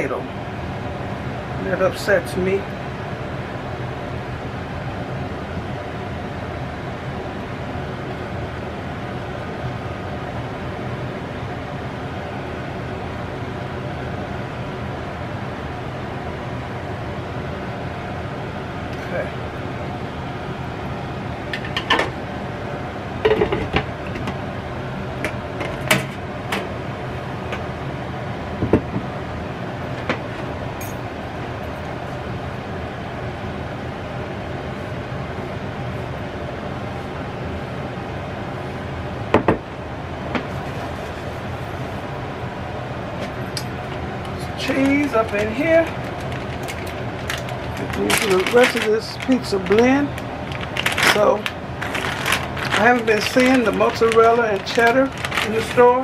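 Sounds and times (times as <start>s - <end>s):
steady mechanical hum: 0.0s - 56.0s.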